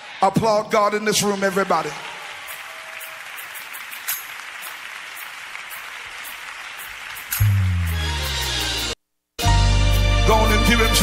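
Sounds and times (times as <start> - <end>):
congregation clapping: 1.1 - 8.5.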